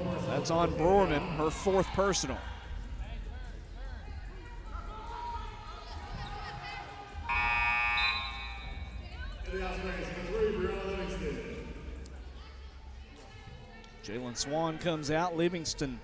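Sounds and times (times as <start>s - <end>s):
crowd background noise: 0.0s - 16.0s
arena horn: 7.2s - 8.8s.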